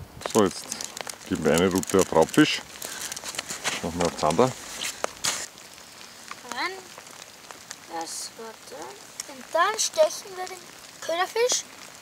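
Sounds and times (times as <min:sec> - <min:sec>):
rubber boot stepping on wet plastic: 0:00.2 - 0:05.5.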